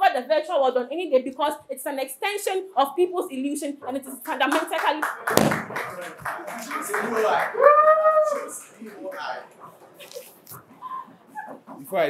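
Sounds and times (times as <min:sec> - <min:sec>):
voices in small room: 0:00.0 - 0:12.0
clapping and tapping: 0:04.2 - 0:07.6.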